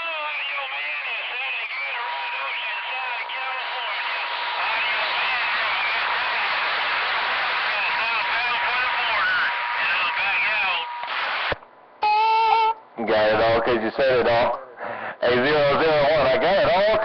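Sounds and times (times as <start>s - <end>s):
radio static: 0.0s - 11.6s, 13.0s - 17.0s
garbled radio voices: 0.0s - 17.0s
radio click: 1.3s - 11.7s
steady whistle: 8.2s - 11.0s.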